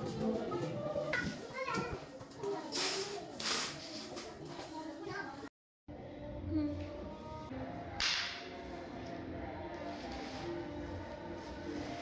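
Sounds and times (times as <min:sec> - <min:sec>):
broom swishing on stone floor: 0:02.6 - 0:04.4, 0:09.8 - 0:12.0.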